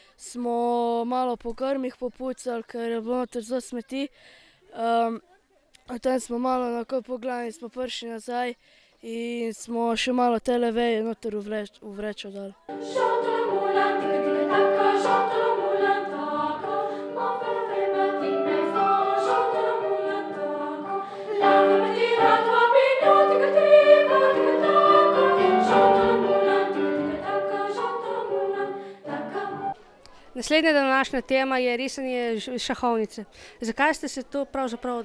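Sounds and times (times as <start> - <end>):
girls' choir singing: 12.7 - 29.8.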